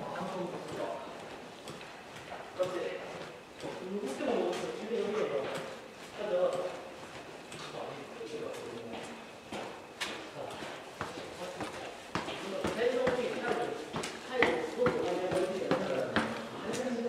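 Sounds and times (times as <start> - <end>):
footsteps on hard floor: 8.9 - 16.9.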